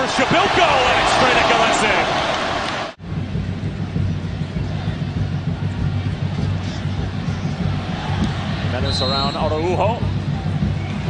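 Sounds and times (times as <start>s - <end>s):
low rumble of stadium crowd: 0.3s - 11.0s.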